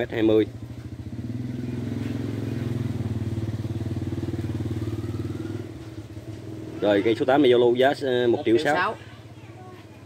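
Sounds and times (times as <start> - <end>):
vehicle engine passing by: 0.0 - 9.1.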